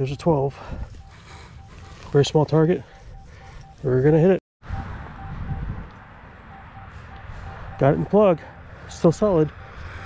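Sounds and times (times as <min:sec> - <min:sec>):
detector coil scraping dirt: 0:00.0 - 0:04.4
metal detector beeps: 0:00.0 - 0:05.7, 0:06.5 - 0:09.1.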